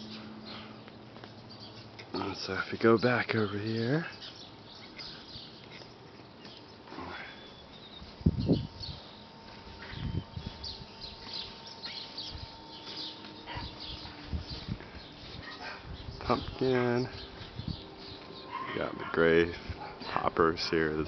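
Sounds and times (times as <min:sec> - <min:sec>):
birds chirping: 0:00.0 - 0:21.0.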